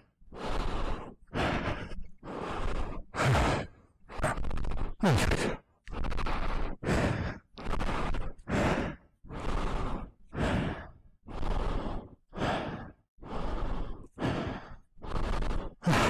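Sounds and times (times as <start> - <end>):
man panting hard: 0.0 - 16.0.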